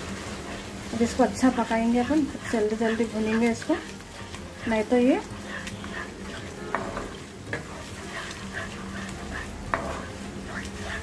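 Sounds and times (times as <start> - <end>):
light sizzle of frying: 0.0 - 11.0
wooden spoon scraping pan: 0.2 - 11.0
spoon knocking on pan: 6.7 - 7.8, 9.7 - 10.1.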